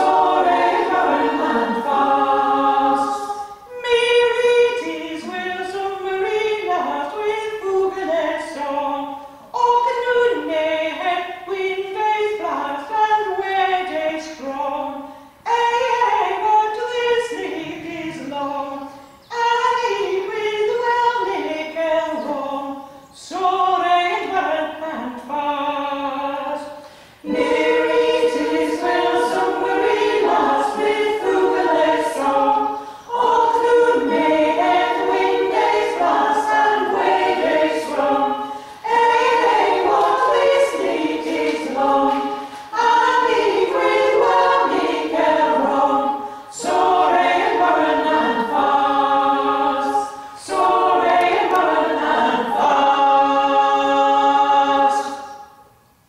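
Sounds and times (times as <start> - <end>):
women's a cappella choir singing: 0.0 - 55.8.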